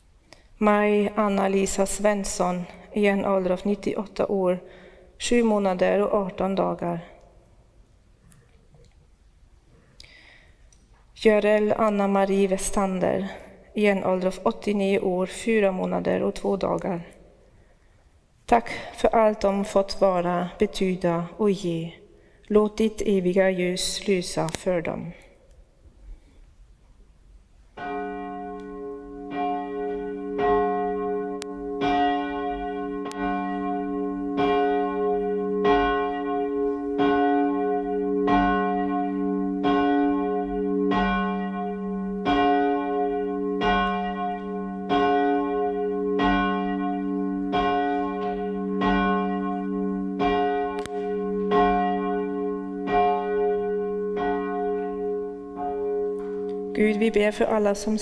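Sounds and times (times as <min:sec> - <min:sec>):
church bell tolling: 0:27.8 - 0:57.6.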